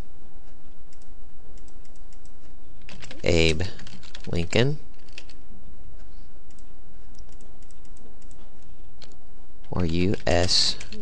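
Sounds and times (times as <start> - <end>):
steady low hum: 0.0 - 11.0
keyboard typing clicks: 0.9 - 3.2, 6.5 - 11.0.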